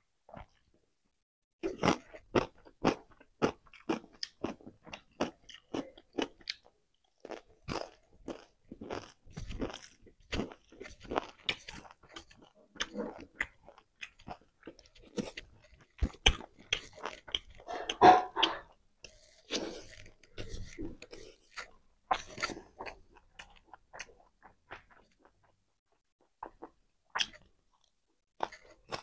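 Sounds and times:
chewing and crunching food: 0:00.3 - 0:00.8, 0:01.6 - 0:29.0.

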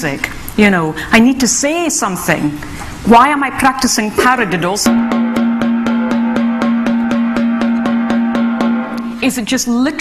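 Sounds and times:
steady ringing pitch: 0:04.9 - 0:09.2
drum played with sticks: 0:04.9 - 0:09.3.

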